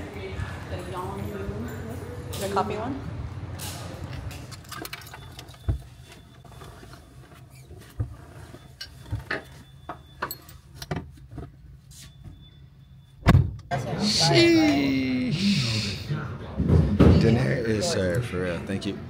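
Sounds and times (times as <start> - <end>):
keys jingling: 4.1 - 5.7.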